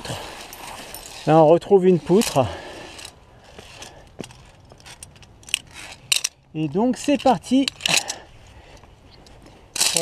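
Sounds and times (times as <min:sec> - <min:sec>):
carabiners clicking on cable: 0:00.1 - 0:10.0.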